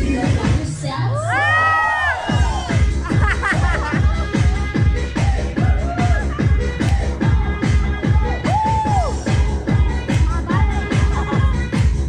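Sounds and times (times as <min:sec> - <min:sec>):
dance music with kick drum: 0:00.0 - 0:12.0
crowd whooping and cheering: 0:01.1 - 0:04.2, 0:05.2 - 0:06.9, 0:08.2 - 0:09.4.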